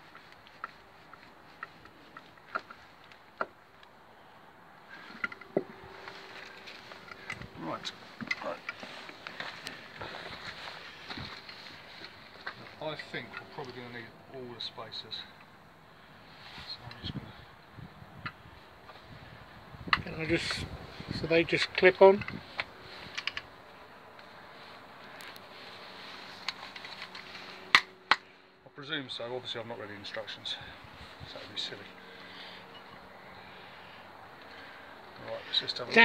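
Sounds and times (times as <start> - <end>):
outdoor background noise: 0.0 - 36.0.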